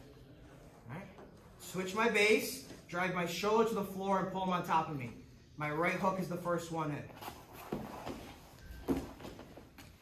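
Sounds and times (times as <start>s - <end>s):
bodies scuffing on foam mats: 7.2s - 10.0s.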